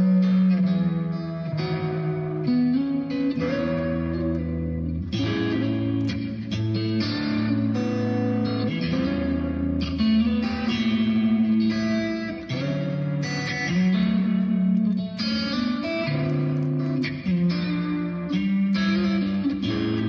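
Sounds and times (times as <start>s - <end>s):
fingerpicked electric guitar chords: 0.0s - 20.0s.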